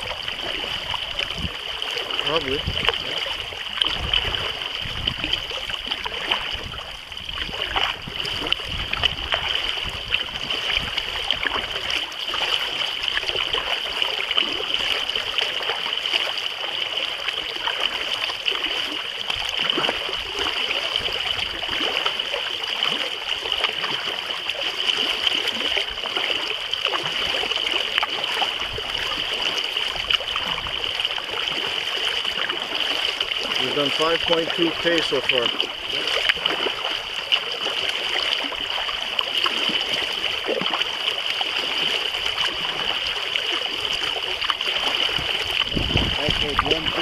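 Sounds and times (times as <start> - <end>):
water splashing against kayak: 0.0 - 47.0.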